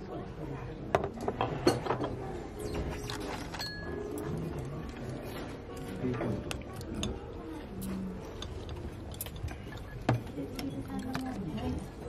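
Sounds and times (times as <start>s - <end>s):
restaurant dining room background: 0.0s - 12.0s
tableware clinking: 0.9s - 11.9s.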